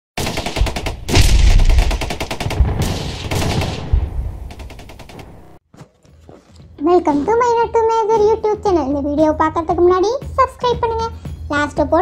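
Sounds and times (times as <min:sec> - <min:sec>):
rapid sharp cracks: 0:00.2 - 0:05.6
heavy low boom: 0:01.0 - 0:04.5.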